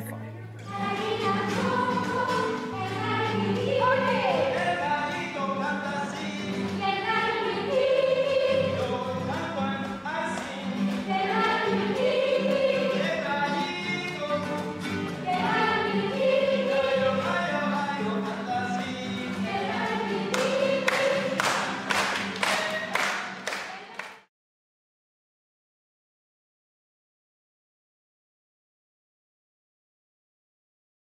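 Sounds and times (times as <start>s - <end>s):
acoustic guitar: 0.0s - 24.3s
children's choir singing: 0.6s - 24.2s.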